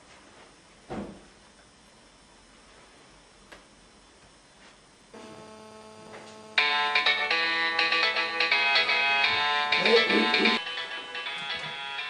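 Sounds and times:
electronic phone ringtone melody: 6.5 - 12.0.

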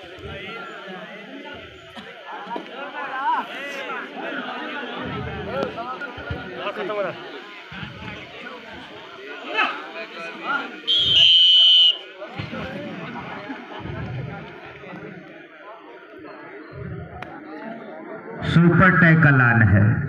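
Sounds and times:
crowd chatter: 0.0 - 20.0
referee's whistle blast: 10.9 - 12.1.

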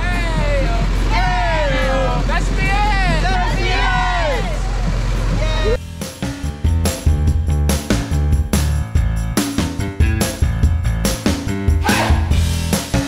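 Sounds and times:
high voices whooping and singing: 0.0 - 4.8, 11.8 - 12.4
vehicle engine idling: 0.0 - 9.3.

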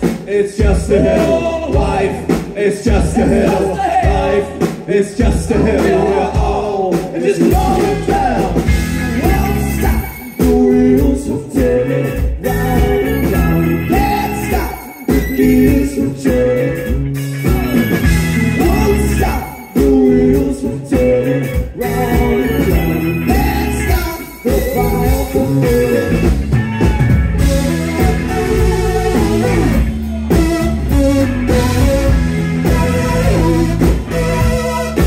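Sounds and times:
people singing: 0.0 - 30.5, 31.5 - 35.0
bass guitar: 0.0 - 35.0
drums: 0.0 - 35.0
electric guitars: 7.5 - 35.0.

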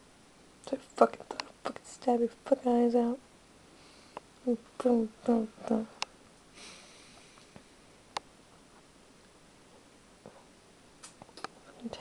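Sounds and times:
nose sniff: 6.6 - 7.4
sharp click: 11.0 - 11.6.

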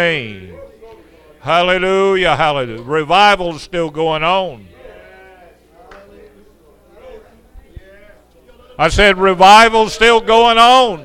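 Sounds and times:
people calling out in prayer: 0.0 - 11.0.

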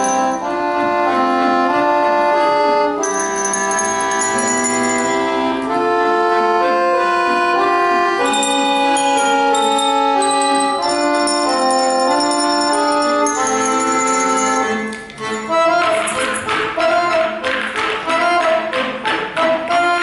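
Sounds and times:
handbells playing a tune: 0.0 - 0.6, 3.0 - 5.7, 8.2 - 16.6
sustained chords: 3.0 - 16.5.

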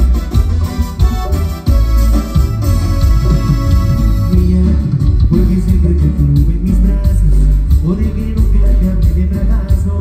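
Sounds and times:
cumbia band over loudspeakers: 0.0 - 10.0.

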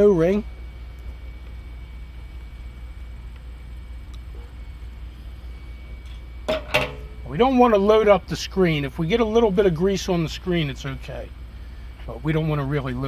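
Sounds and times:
low hum: 0.0 - 13.0.

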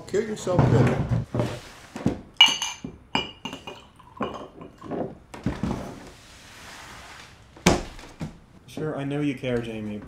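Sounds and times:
glass clinking against glass: 2.4 - 4.9.

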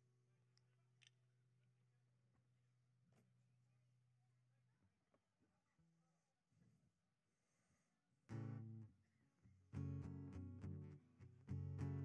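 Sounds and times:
acoustic guitar strumming: 8.3 - 8.8, 9.8 - 12.0.

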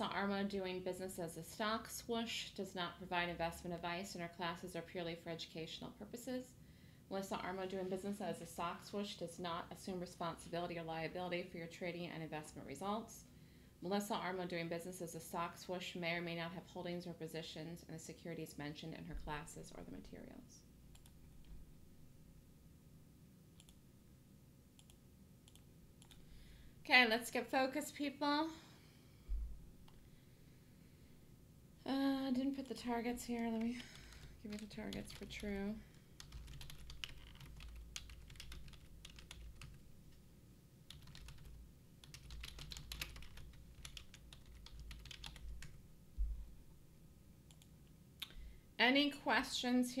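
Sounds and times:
computer mouse clicks: 23.6 - 23.8, 24.8 - 26.2
typing on computer keyboard: 33.4 - 35.6, 36.2 - 39.8, 40.9 - 45.8.

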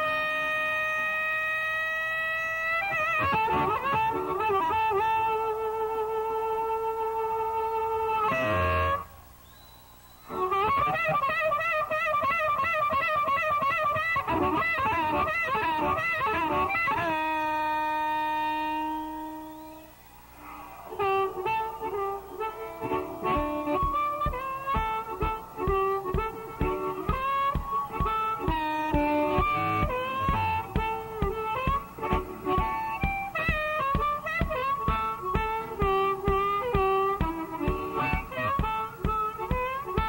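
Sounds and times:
blues-rock band playing: 2.6 - 9.0, 10.3 - 19.6, 20.9 - 40.0
long high sustained note: 14.9 - 40.0.

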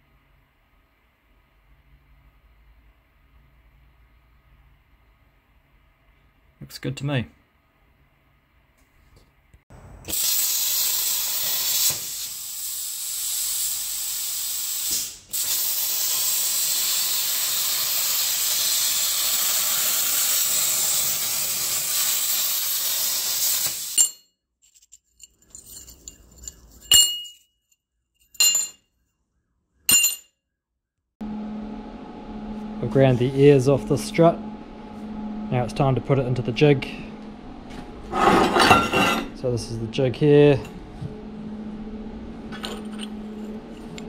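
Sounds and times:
plasma cutter hissing: 10.1 - 24.0.

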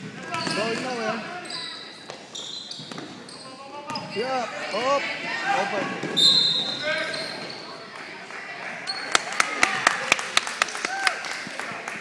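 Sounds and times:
spectators shouting and cheering: 8.8 - 12.0.

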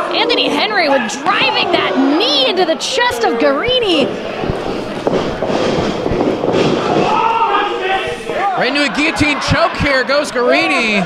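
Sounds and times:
crowd noise echoing in hall: 0.0 - 11.0
faint voices: 0.0 - 11.0.

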